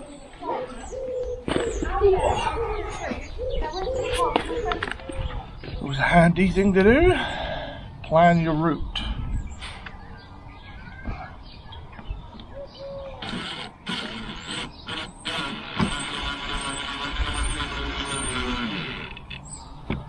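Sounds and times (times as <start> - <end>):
cordless drill whining: 13.2 - 19.4.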